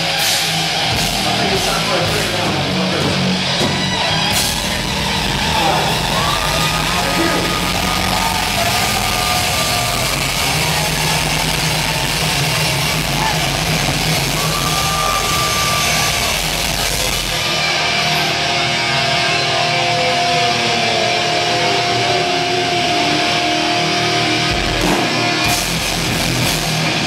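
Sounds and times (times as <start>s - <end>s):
heavy metal band playing live: 0.0s - 27.0s.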